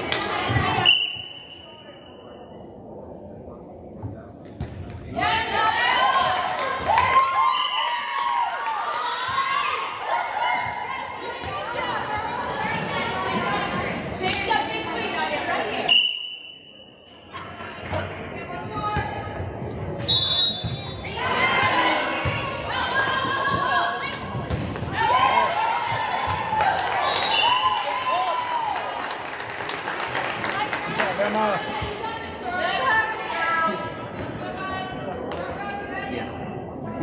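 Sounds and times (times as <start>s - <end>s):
crowd calling out and cheering: 5.0s - 37.0s
girls shouting and cheering: 5.2s - 13.4s
referee's whistle blast: 15.9s - 16.9s, 20.1s - 21.0s.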